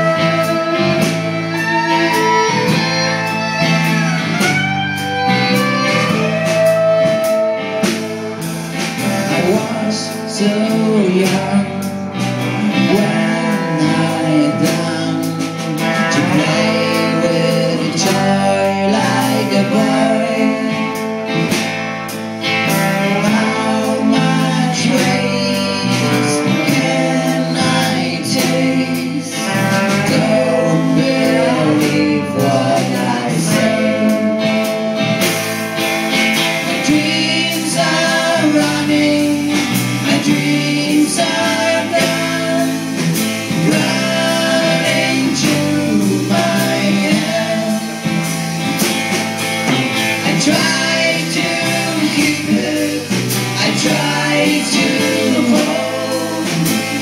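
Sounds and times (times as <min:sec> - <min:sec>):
violin: 0:00.0 - 0:08.6
person singing: 0:00.0 - 0:35.6, 0:36.3 - 0:48.9, 0:49.6 - 0:57.0
rock band playing: 0:00.0 - 0:57.0.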